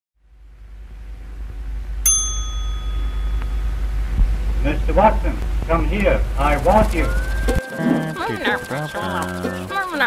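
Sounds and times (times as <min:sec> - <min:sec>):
low hum: 0:00.2 - 0:10.0
small bell ringing: 0:02.0 - 0:04.0.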